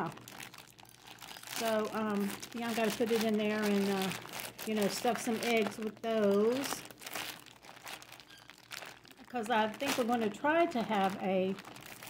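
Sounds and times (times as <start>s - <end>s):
plastic bag crinkling: 0.0s - 12.0s.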